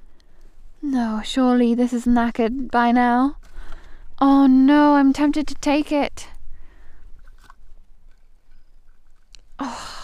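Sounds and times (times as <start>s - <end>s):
light scraping on rubble: 6.9s - 9.6s.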